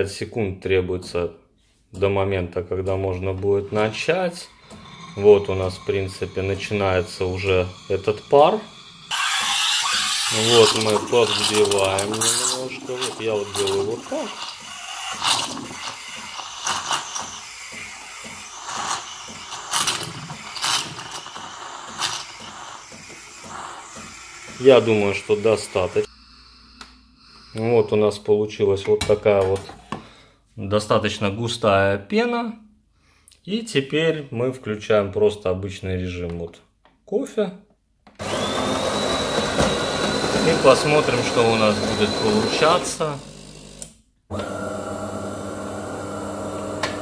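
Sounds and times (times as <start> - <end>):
steam wand hissing frothing milk: 3.7 - 28.0, 38.2 - 43.3
coffee grinder grinding beans: 4.4 - 27.7, 38.2 - 47.0.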